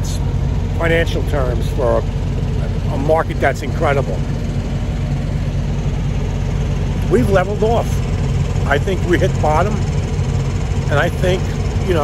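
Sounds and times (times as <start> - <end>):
diesel truck engines idling: 0.0 - 12.0.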